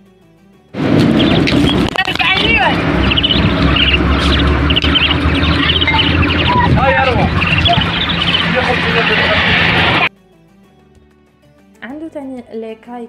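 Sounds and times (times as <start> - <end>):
birds chirping: 0.8 - 10.1
wind on microphone: 0.8 - 10.1
soft background music: 8.6 - 13.0.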